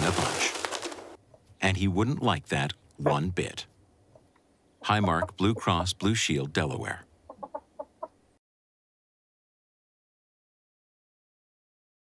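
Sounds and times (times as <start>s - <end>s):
hen clucking: 4.1s - 6.1s, 7.2s - 8.3s.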